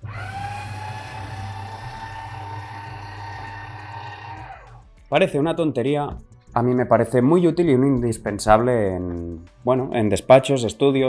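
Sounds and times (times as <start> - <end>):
paper shredder running: 0.0 - 4.6.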